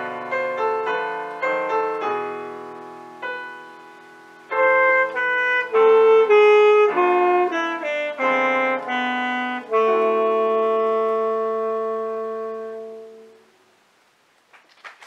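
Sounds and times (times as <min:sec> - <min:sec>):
piano accompaniment: 0:00.0 - 0:13.5
alto saxophone: 0:04.4 - 0:13.8.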